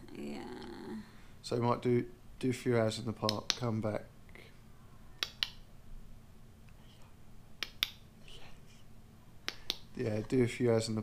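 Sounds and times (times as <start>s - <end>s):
faint room hum: 0.0s - 11.0s
sharp clicks: 3.2s - 3.7s, 5.2s - 5.6s, 7.6s - 8.0s.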